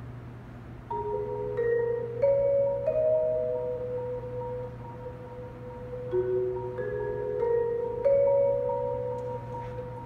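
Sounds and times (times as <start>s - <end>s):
sustained marimba note: 0.9s - 10.0s.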